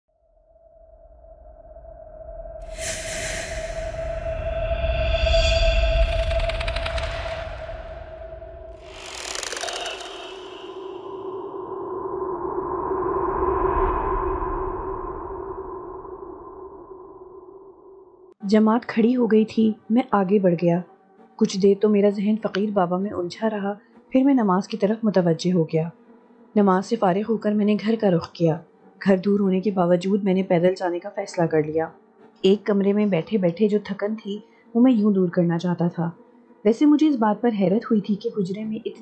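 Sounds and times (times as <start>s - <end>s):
low rumble: 0.2s - 9.2s, 9.9s - 18.2s
bright hissing whoosh: 2.6s - 6.1s
synthesized steady tone: 2.7s - 13.1s.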